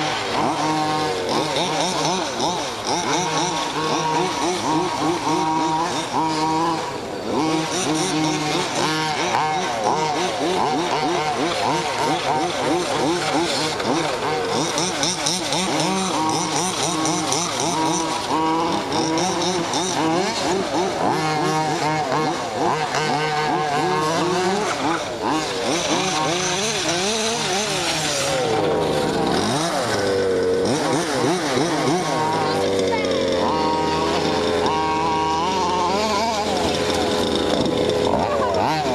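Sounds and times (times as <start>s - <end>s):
model car engines buzzing: 0.0s - 38.9s.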